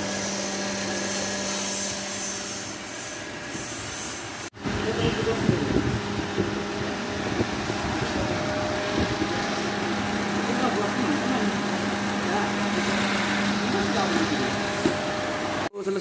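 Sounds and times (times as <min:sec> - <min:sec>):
air conditioning compressor running: 0:00.0 - 0:15.7
car engine idling: 0:04.5 - 0:15.7.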